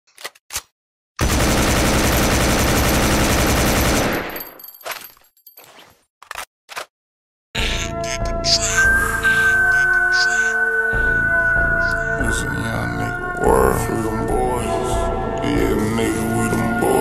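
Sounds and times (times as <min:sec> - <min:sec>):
automatic gunfire: 0:01.2 - 0:04.6
music: 0:07.6 - 0:17.0.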